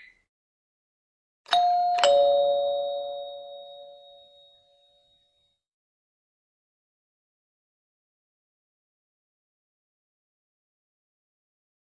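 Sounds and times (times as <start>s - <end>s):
two-note ding-dong chime: 1.5s - 5.5s.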